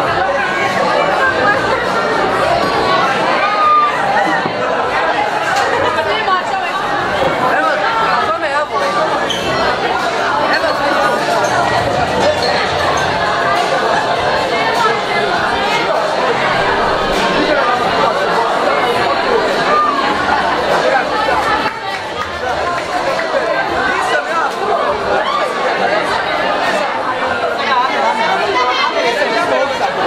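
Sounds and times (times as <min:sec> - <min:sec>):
crowd babble: 0:00.0 - 0:30.0.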